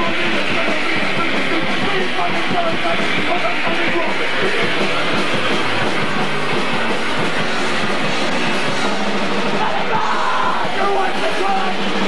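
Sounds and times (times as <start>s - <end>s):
punk rock band playing live: 0.0s - 12.0s.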